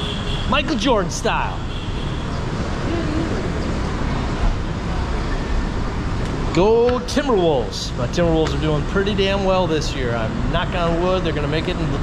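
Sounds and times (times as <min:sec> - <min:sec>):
traffic rumble: 0:00.0 - 0:12.0
faint voice: 0:02.8 - 0:03.8.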